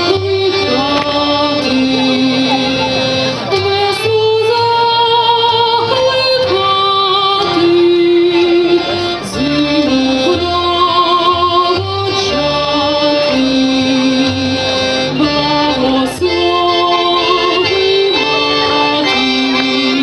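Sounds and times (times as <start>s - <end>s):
folk dance music band: 0.0s - 20.0s.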